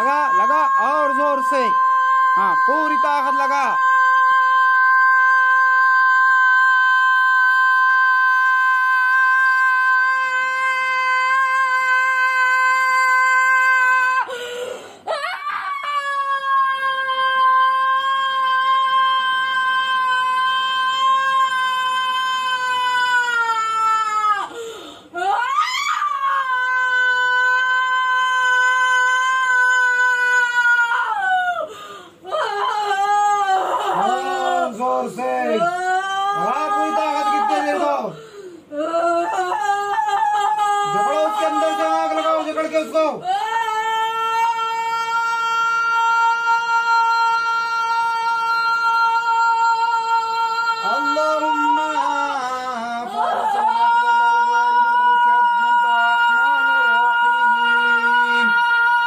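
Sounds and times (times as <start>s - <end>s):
woman wailing: 0.0s - 14.4s, 15.1s - 24.5s, 25.2s - 31.7s, 32.3s - 34.8s, 35.4s - 59.0s
woman gasping cries: 14.2s - 15.3s, 24.4s - 25.3s.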